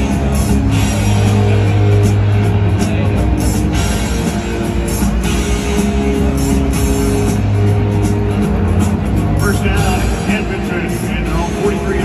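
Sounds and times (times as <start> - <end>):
music over stadium loudspeakers: 0.0 - 12.0
people's voices: 0.0 - 12.0.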